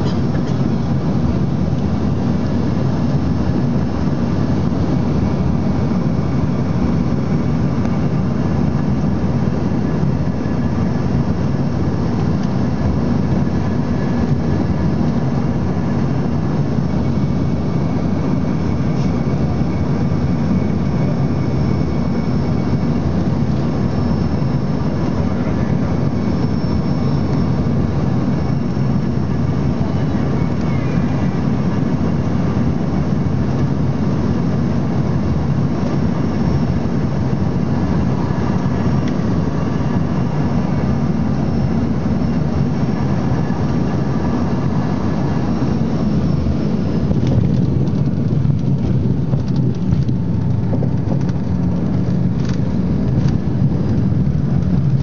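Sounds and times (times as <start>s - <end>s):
faint high engine whine: 0.0s - 55.0s
jet cabin engine rumble: 0.0s - 55.0s.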